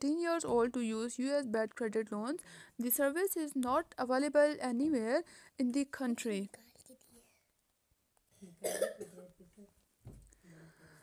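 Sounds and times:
person coughing: 0:08.4 - 0:09.3.

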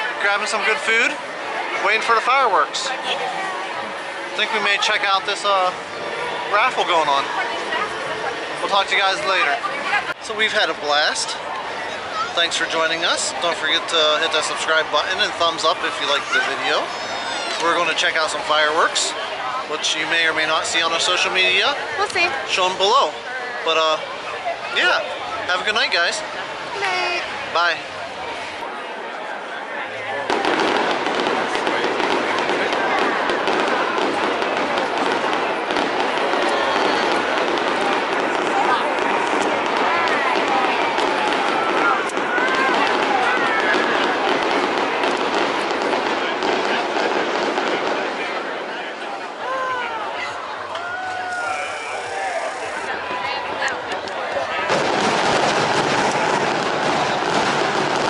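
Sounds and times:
fireworks cracking: 0:00.0 - 0:28.0, 0:30.2 - 0:49.7, 0:51.0 - 0:58.0
crowd chatter: 0:00.0 - 0:58.0.

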